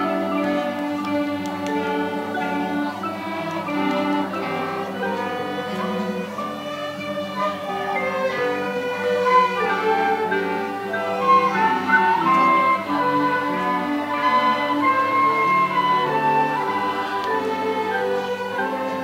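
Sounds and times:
bowed strings: 0.0 - 19.0
cello and double bass: 0.0 - 19.0
wind instruments: 0.0 - 19.0.

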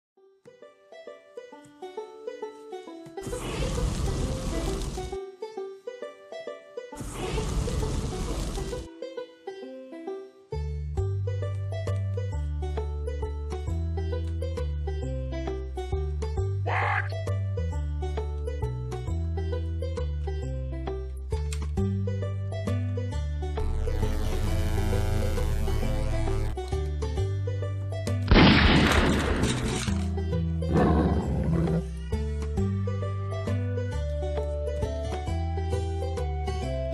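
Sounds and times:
plucked banjo-style music: 0.2 - 4.0, 4.7 - 36.9
loud rushing noise: 7.0 - 8.9
monster roar: 16.7 - 17.1.

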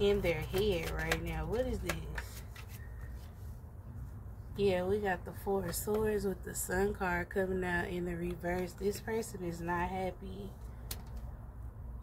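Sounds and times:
soft rubbing of cards: 0.1 - 4.2.

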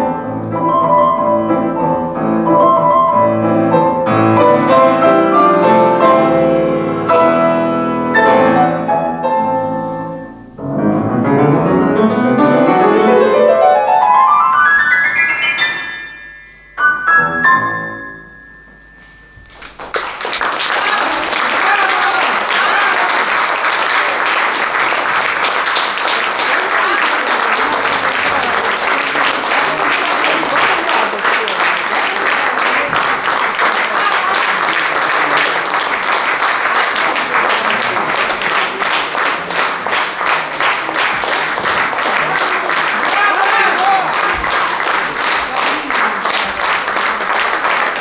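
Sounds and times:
piano notes: 0.0 - 20.4
audience applauding: 19.4 - 48.0.

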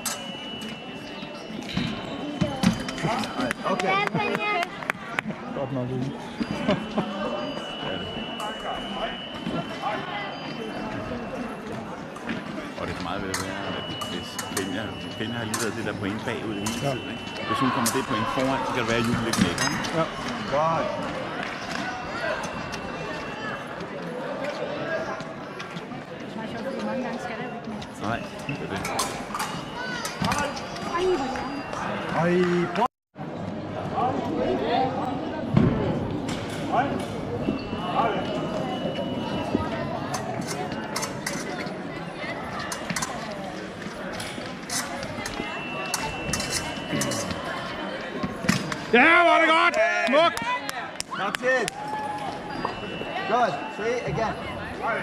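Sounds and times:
long electronic beeps: 0.0 - 3.8, 6.2 - 11.6, 13.1 - 18.7, 37.4 - 40.1, 45.4 - 47.6, 52.4 - 54.2
voices echoing in sports hall: 0.0 - 55.0.

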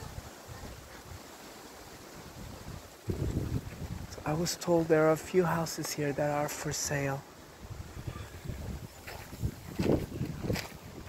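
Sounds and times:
wind on microphone: 0.0 - 1.3, 1.9 - 4.5, 7.5 - 11.0.

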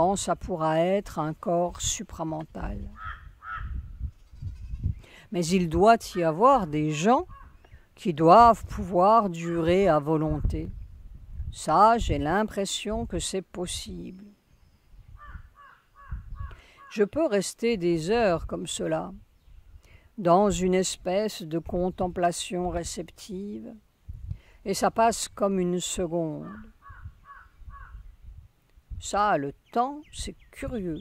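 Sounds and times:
bird calling: 2.9 - 4.8, 15.2 - 17.0, 26.4 - 28.1.

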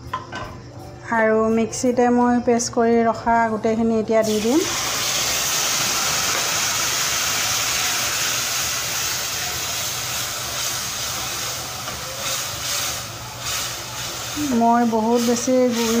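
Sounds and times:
paste sizzling in hot oil: 4.2 - 16.0.

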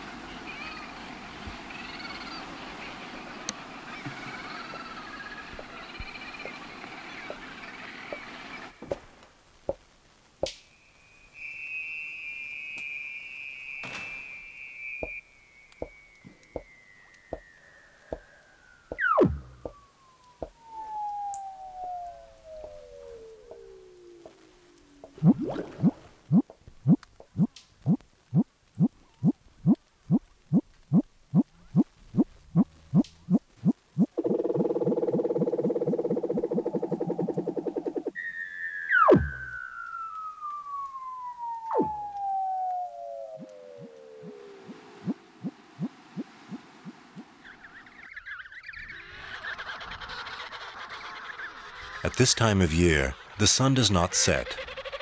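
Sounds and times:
sharp downward chirps: 10.7 - 26.5, 37.5 - 45.9
seal whistling trills underwater: 38.0 - 45.2.

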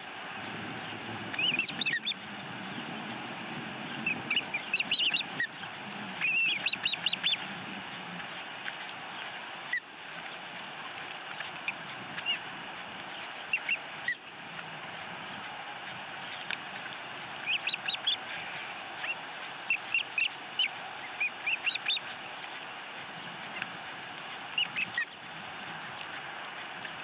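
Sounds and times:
background hiss: 0.0 - 27.0
ospreys chirping: 0.3 - 27.0.

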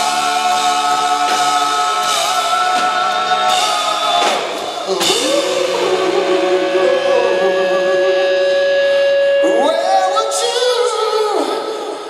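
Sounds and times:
drums: 0.0 - 12.0
electric guitar: 0.0 - 12.0
person singing: 0.0 - 12.0.

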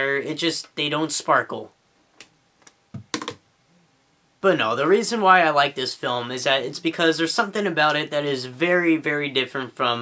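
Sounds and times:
sharp clicks and knocks: 2.2 - 3.4.

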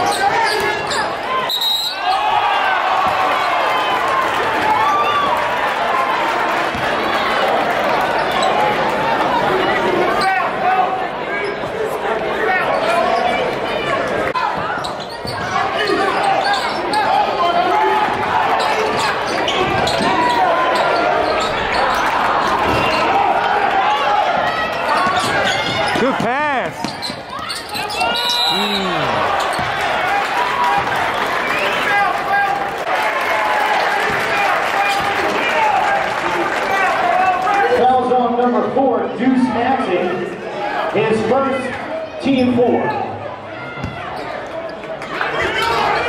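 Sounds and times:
crowd babble: 0.0 - 46.0
shoe sliding squeal: 14.8 - 17.0, 26.8 - 29.6.

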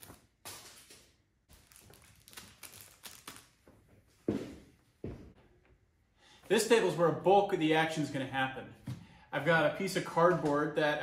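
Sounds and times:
plastic rustling: 0.0 - 3.9.

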